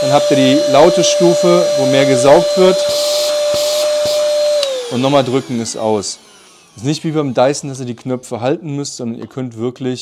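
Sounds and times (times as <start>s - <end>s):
vacuum cleaner motor whine: 0.0s - 8.4s.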